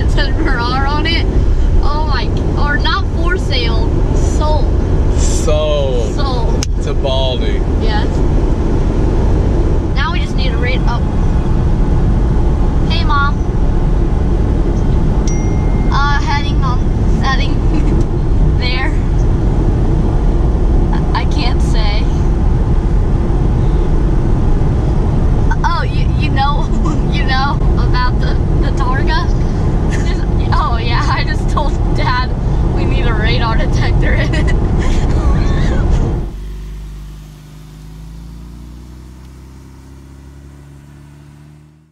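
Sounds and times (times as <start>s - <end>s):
car engine pulling away: 0.0s - 41.9s
road and engine rumble in car cabin: 0.0s - 41.9s.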